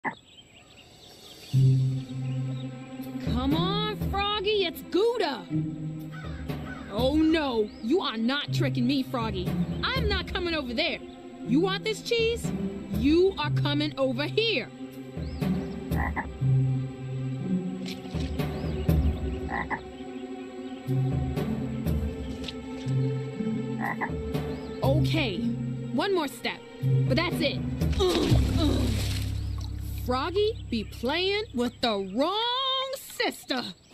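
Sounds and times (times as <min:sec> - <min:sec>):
cartoon frog croaking: 0:16.0 - 0:16.3, 0:19.5 - 0:19.8, 0:23.8 - 0:24.2.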